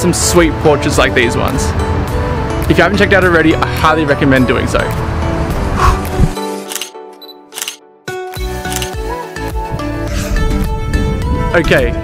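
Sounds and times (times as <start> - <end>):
upbeat background music: 0.0 - 12.0
camera shutter clicks: 6.4 - 9.0.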